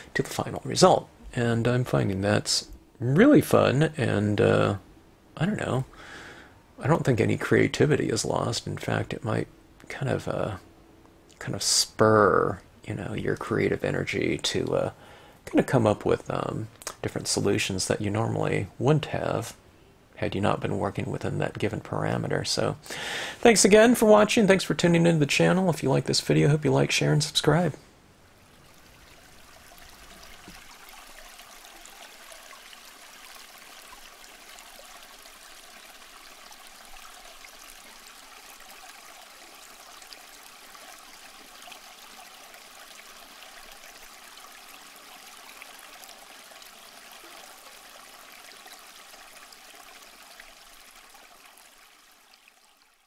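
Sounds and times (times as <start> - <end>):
running water: 20.2 - 53.0.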